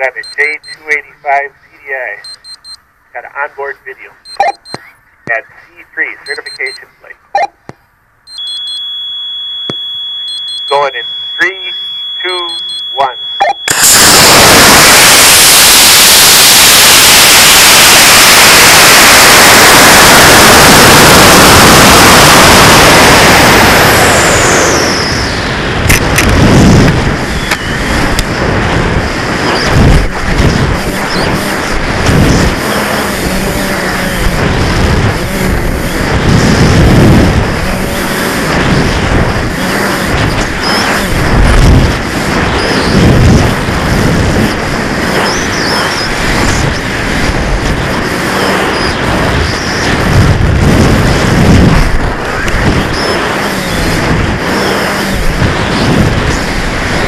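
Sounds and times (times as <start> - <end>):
falling whistle: 8.3 - 22.9
rocket motor roar and airflow: 8.3 - 57.0
wind buffeting with low thumps: 13.8 - 57.0.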